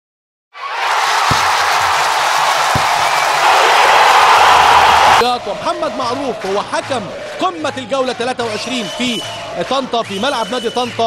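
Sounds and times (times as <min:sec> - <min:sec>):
crowd roar: 0:00.6 - 0:09.7
deep hits: 0:01.3 - 0:03.8.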